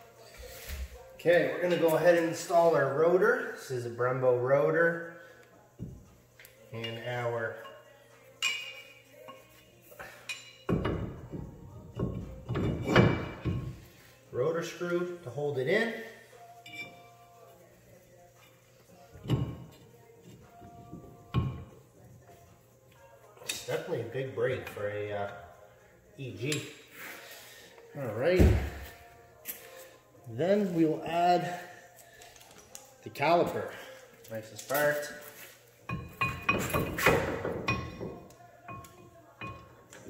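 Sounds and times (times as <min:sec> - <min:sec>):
metal clinks: 0:16.6 - 0:17.2.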